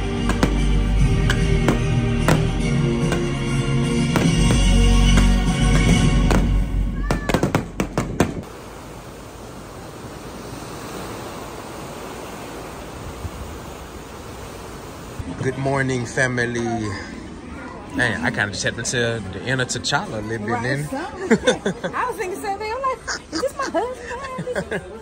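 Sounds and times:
loud music: 0.0 - 7.1
fireworks bursting: 0.0 - 9.0
steady rushing noise: 7.7 - 16.4
voices: 15.2 - 25.0.

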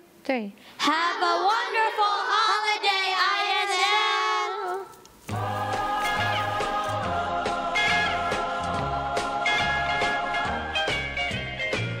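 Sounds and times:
children singing in unison: 0.8 - 10.9.

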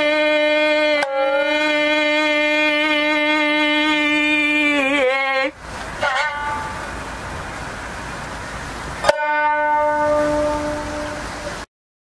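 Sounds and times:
shamisen notes: 0.0 - 7.3, 9.0 - 11.7
steady hiss: 0.0 - 11.7.

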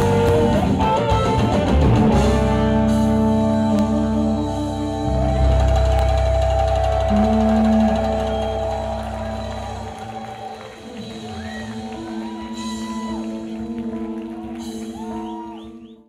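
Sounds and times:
strong bass: 0.0 - 10.3
rock band playing: 0.0 - 15.9.

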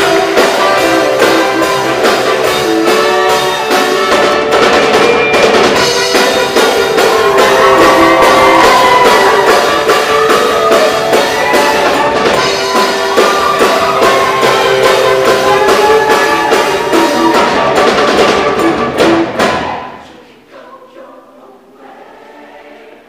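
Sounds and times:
live band with drum kit: 0.0 - 20.0
choir singing: 5.8 - 17.8, 19.2 - 23.0.

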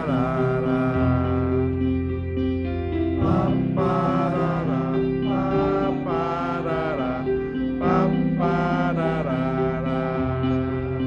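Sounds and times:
keyboard and guitar chords: 0.0 - 11.0
wavering melody line: 0.0 - 11.0.

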